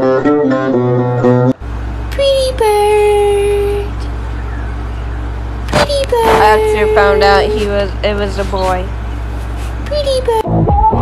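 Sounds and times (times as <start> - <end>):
low hum: 1.2 - 11.0.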